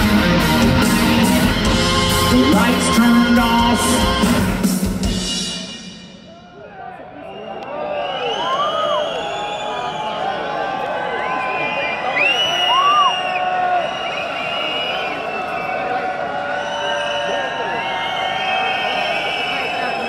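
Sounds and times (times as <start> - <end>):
crowd cheering and shouting: 0.0 - 20.0.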